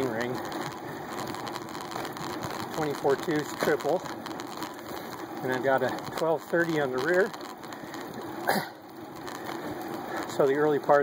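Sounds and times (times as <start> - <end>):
person coughing: 8.4 - 8.8.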